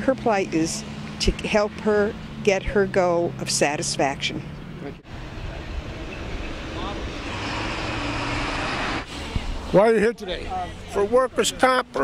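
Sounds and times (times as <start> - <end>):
passing vehicle rushing: 0.0 - 11.4.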